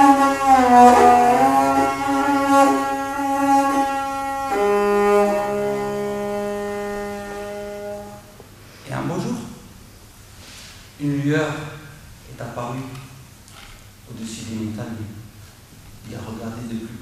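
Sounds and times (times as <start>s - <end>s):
horsehead fiddle bowed notes: 0.0s - 8.4s.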